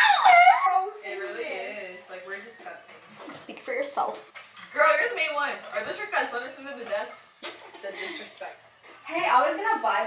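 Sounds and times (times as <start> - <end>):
women laughing: 0.0 - 0.9.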